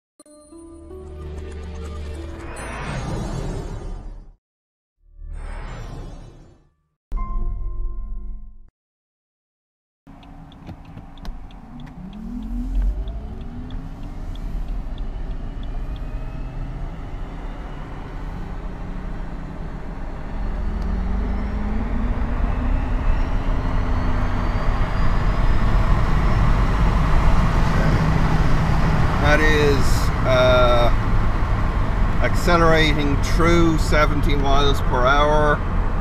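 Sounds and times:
road and tyre noise: 10.1s - 36.0s.

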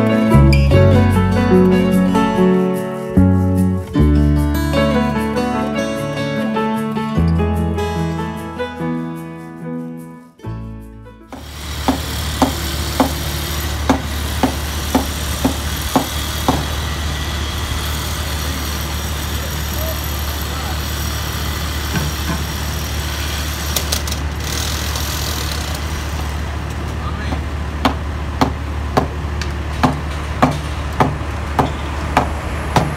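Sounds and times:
sharp knocks: 11.3s - 16.8s, 27.3s - 29.2s, 29.8s - 32.9s
wide noise: 11.3s - 32.9s.

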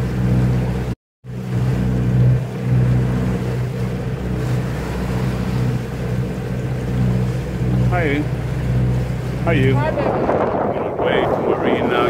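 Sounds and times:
boat engine droning: 0.0s - 12.0s
water rushing past hull: 0.0s - 12.0s
wind: 0.0s - 12.0s.

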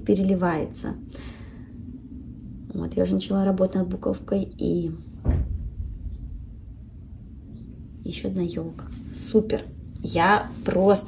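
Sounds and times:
low rumble: 0.0s - 11.0s
handling thump: 5.2s - 6.4s.

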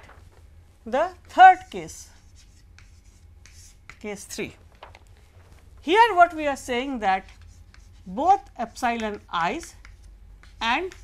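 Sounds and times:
chalk scratching on chalkboard: 1.2s - 4.3s, 6.9s - 11.0s.

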